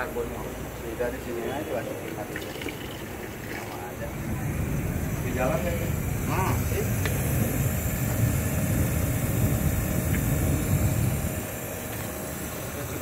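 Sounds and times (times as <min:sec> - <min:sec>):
low machinery rumble: 0:00.0 - 0:13.0.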